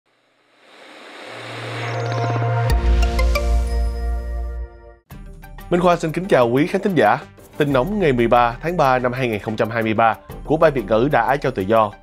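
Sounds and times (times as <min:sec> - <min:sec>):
rising whoosh: 0:00.4 - 0:04.7
musical hit: 0:01.5 - 0:05.6.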